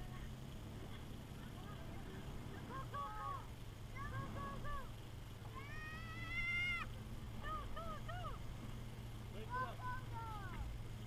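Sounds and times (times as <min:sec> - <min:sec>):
truck engine humming: 0:00.0 - 0:11.0.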